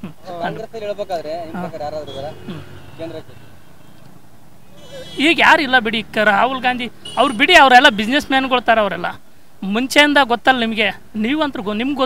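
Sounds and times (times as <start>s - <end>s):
man speaking: 0.0s - 3.4s
faint drawn-out eh: 0.0s - 7.4s
low steady background noise: 0.0s - 12.0s.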